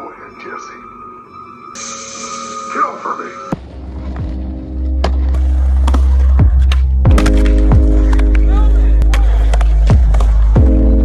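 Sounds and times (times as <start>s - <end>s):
skateboard rolling on concrete: 3.6s - 11.0s
music with heavy bass beat: 5.4s - 11.0s
skateboard clacks: 5.8s - 10.6s.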